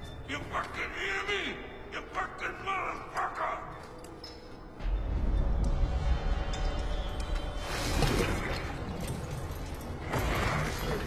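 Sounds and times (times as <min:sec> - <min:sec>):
deep low drone: 0:04.8 - 0:11.0.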